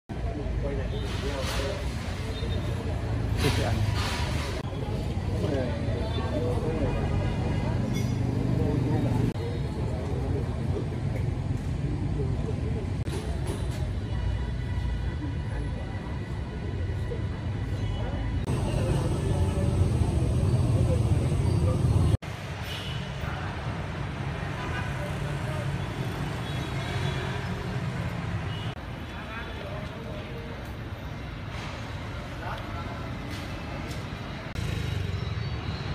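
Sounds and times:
low traffic rumble: 0.1s - 35.9s
crowd talking indistinctly: 0.2s - 22.2s.

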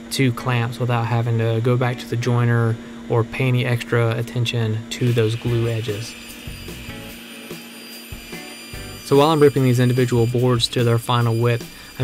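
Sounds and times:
dust extractor: 4.9s - 12.0s
background music: 5.1s - 12.0s.

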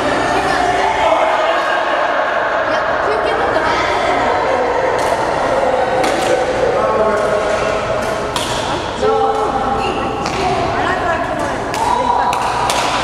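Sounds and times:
voices talking in echoing hall: 0.0s - 13.0s
rackets hitting shuttlecock: 6.0s - 6.5s, 7.2s - 9.6s, 11.7s - 13.0s.

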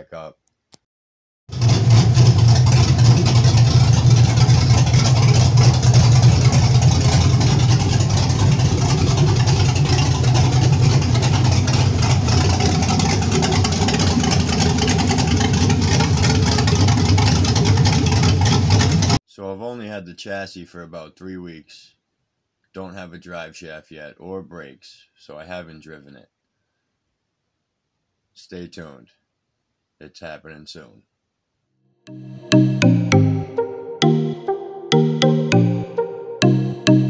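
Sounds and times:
car engine running: 1.5s - 19.2s.

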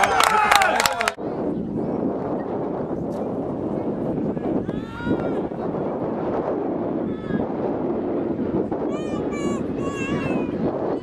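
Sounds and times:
outdoor rushing noise: 0.0s - 11.0s.

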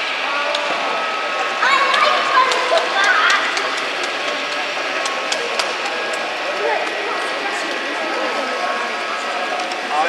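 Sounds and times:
model train running: 0.0s - 10.0s.

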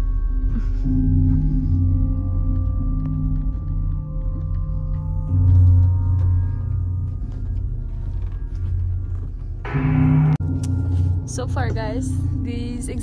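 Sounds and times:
ambient music with deep drone: 0.0s - 13.0s.

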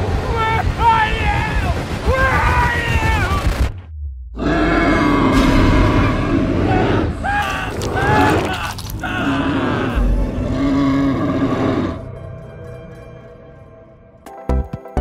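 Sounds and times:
deep rumble: 0.0s - 12.6s
voice-like cries: 4.5s - 10.0s.

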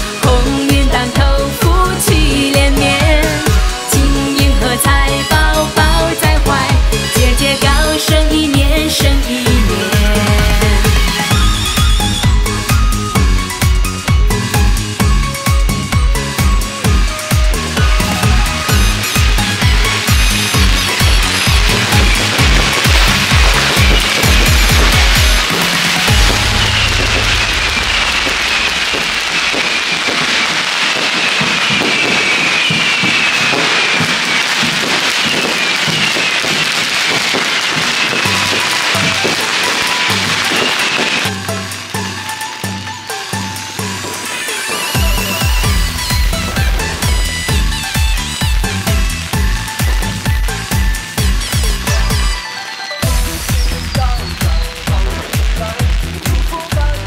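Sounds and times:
electronic dance music: 0.0s - 57.0s
firecrackers crackling: 0.0s - 57.0s.

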